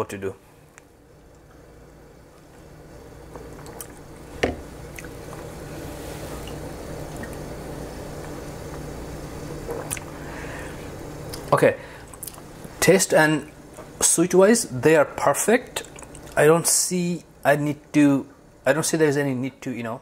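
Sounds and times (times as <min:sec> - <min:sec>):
steady low hum: 0:00.0 - 0:20.0
person sipping from mug: 0:09.6 - 0:10.6.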